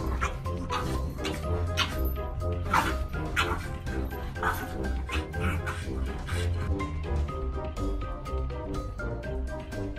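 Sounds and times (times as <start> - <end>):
background music: 0.0 - 9.9.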